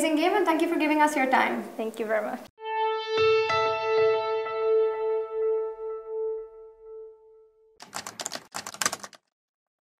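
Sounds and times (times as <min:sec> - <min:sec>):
keyboard typing clicks: 0:07.8 - 0:09.2.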